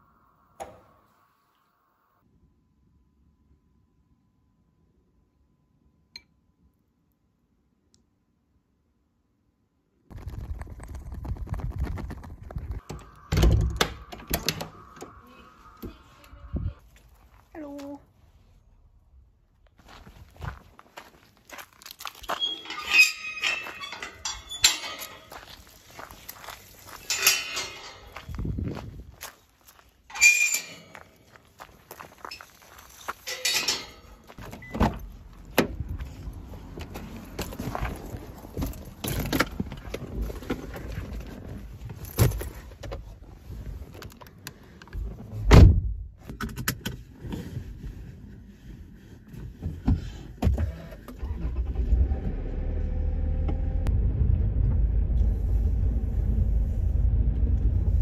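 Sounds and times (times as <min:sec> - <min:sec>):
footsteps on gravel: 0:19.8 - 0:22.7, 0:25.0 - 0:30.1, 0:30.9 - 0:33.3.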